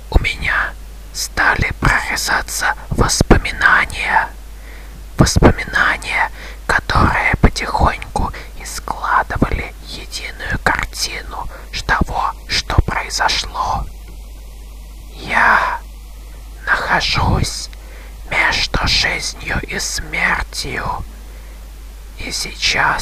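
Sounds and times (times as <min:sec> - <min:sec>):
person whispering: 0:00.1 - 0:04.4, 0:05.2 - 0:13.9, 0:15.1 - 0:15.8, 0:16.6 - 0:21.1, 0:22.2 - 0:23.0.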